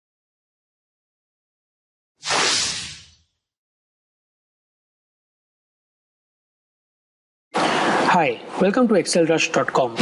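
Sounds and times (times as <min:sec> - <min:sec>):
whoosh: 0:02.2 - 0:03.4.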